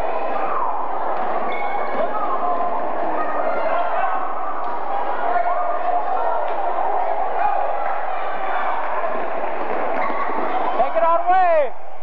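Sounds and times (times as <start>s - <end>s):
people calling out and talking: 0.0s - 12.0s.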